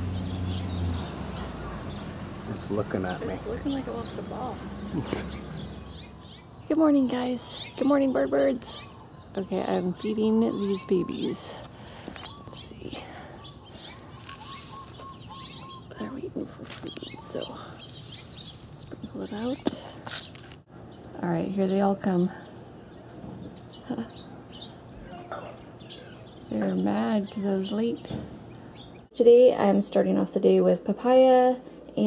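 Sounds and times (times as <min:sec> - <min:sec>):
faint birds chirping: 0:00.0 - 0:30.6.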